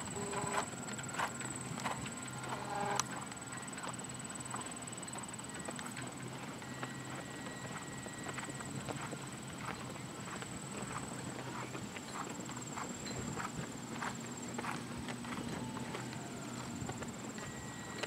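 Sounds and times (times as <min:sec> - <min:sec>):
horse hoofbeats on soft ground: 0:03.7 - 0:18.0.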